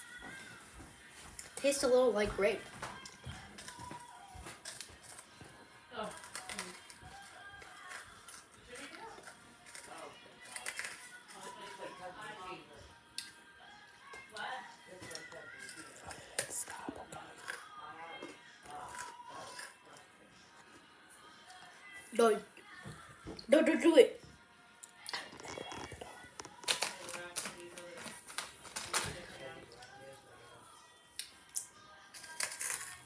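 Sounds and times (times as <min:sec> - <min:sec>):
background music: 0:00.0 - 0:33.0
snack bag crinkling: 0:03.6 - 0:05.3, 0:06.1 - 0:11.8, 0:15.0 - 0:17.7, 0:18.9 - 0:19.8, 0:25.1 - 0:29.5, 0:32.2 - 0:33.0
faint voices: 0:05.5 - 0:23.2.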